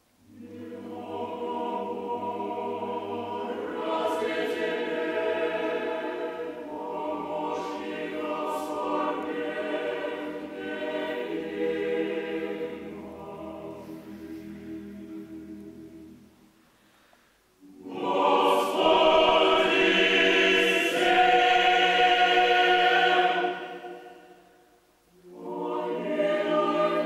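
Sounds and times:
mixed choir chanting unaccompanied: 0:00.2 - 0:16.3, 0:17.6 - 0:27.0.

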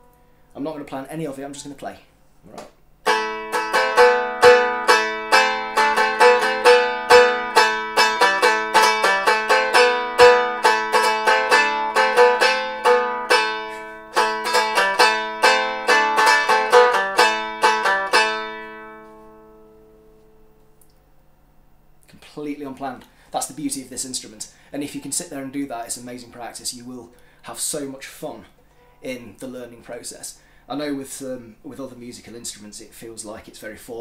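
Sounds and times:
lyre strummed with a plectrum: 0:02.5 - 0:20.7
open strings ringing: 0:03.0 - 0:20.3.

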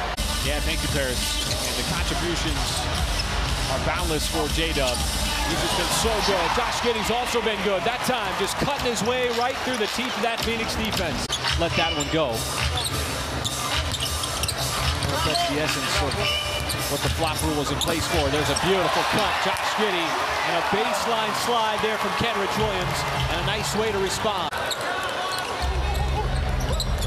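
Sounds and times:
crowd din: 0:00.0 - 0:27.0.

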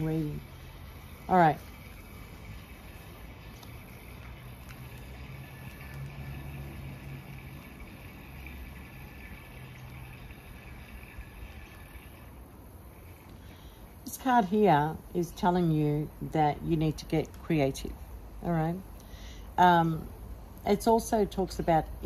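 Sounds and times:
faint high hiss: 0:00.0 - 0:22.0.

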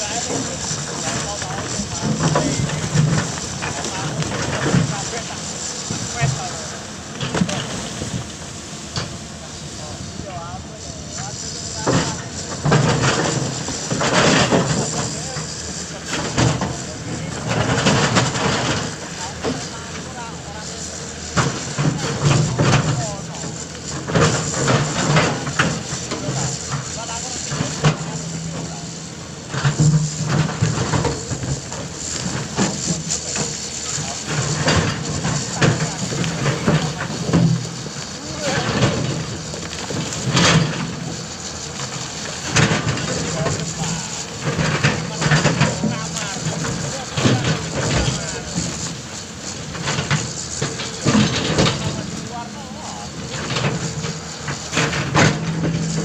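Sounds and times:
excavator diesel engine: 0:00.0 - 0:56.0
rock and soil clatter: 0:00.0 - 0:56.0.

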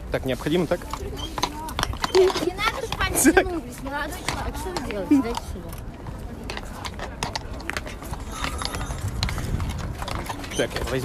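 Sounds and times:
hooves clopping on paving: 0:00.0 - 0:11.0
wind rumble on microphone: 0:00.8 - 0:11.0.

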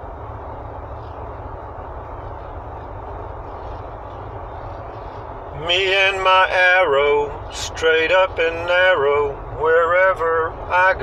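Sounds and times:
car interior road and engine noise: 0:00.0 - 0:11.0.

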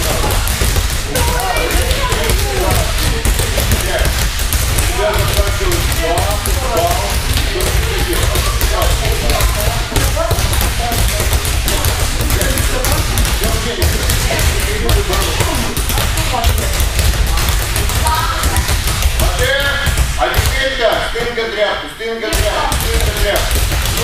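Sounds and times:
balls bouncing on mats: 0:00.0 - 0:21.4, 0:22.3 - 0:24.0
voices: 0:00.0 - 0:24.0.

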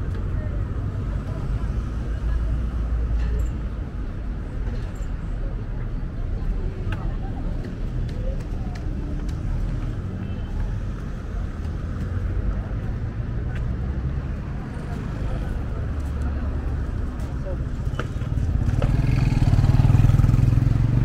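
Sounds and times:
traffic engines rumbling: 0:00.0 - 0:21.0
voices of people passing: 0:00.0 - 0:21.0.

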